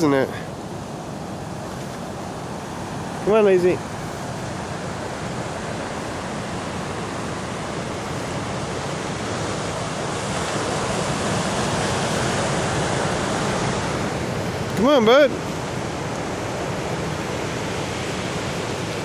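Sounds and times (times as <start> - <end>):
waves breaking on shingle beach: 0.0 - 19.0.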